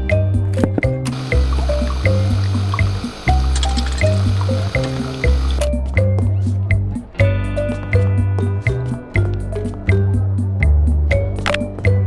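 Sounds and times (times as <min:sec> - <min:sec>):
background music with steady beat: 0:00.0 - 0:12.0
coffee machine pouring hiss: 0:01.1 - 0:05.7.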